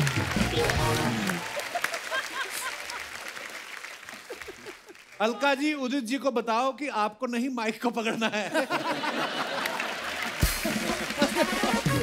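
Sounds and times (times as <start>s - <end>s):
audience applauding: 0.0s - 5.5s, 8.9s - 12.0s.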